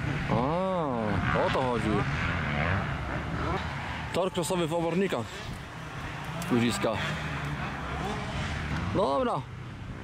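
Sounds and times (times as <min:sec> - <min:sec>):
motorcycle engines running: 0:00.0 - 0:10.0.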